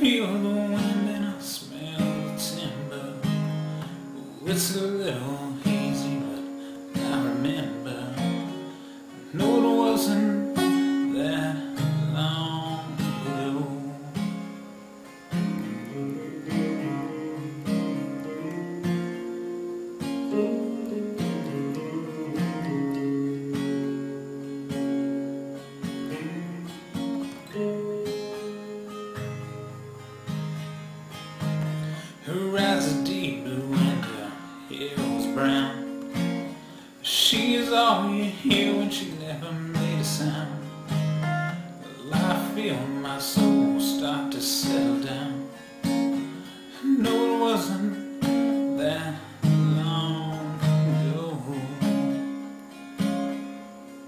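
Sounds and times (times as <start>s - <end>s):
acoustic guitar strummed and picked: 0.0s - 54.0s.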